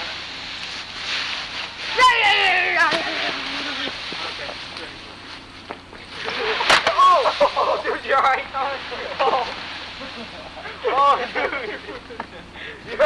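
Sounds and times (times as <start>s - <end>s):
person yelling: 1.9s - 3.0s.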